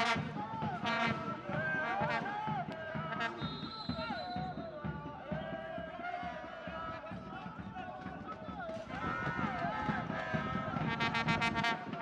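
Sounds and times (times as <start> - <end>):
crowd chanting and singing: 0.0 - 12.0
stadium hubbub: 0.0 - 12.0.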